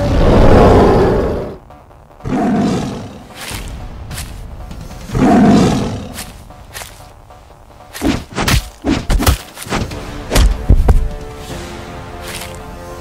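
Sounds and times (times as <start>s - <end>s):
background music: 0.0s - 13.0s
big cat roaring: 5.1s - 6.2s.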